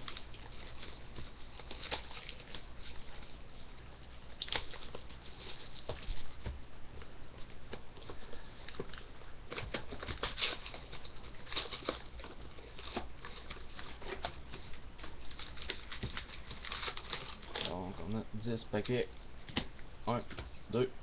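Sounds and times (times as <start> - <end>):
plastic wrap crinkling and tearing: 0.0 - 6.4, 7.6 - 18.0.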